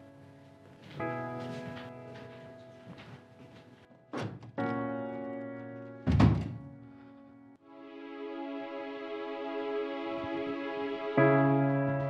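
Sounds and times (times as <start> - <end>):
soft sad music: 0.0 - 12.0.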